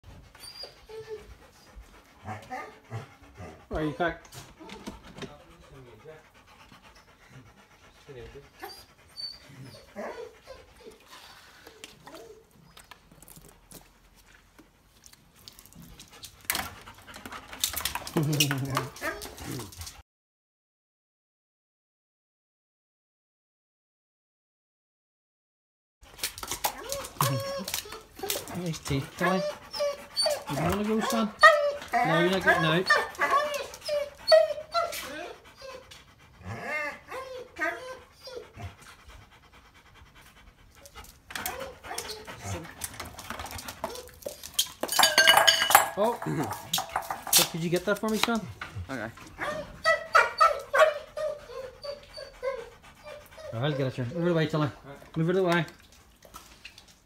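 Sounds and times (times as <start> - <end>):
dog panting: 0.0 - 20.0, 26.1 - 56.6
dog whining: 0.1 - 1.6, 8.5 - 13.3, 26.6 - 38.7, 41.4 - 42.6, 43.8 - 47.4, 49.2 - 54.4.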